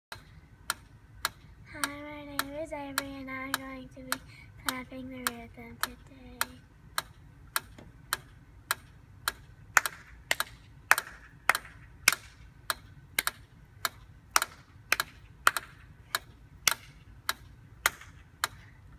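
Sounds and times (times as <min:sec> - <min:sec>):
metronome ticking: 0:00.1 - 0:18.7
child clapping hands: 0:09.8 - 0:12.3.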